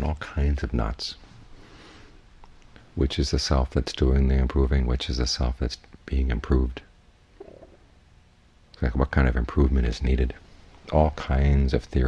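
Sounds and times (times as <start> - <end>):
man talking: 0.0 - 1.2, 3.0 - 6.9, 8.8 - 12.0.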